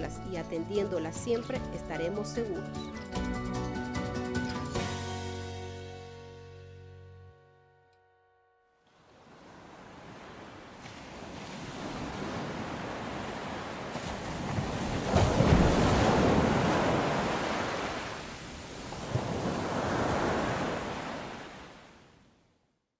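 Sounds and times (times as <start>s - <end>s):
ocean waves breaking on beach: 8.9s - 22.2s.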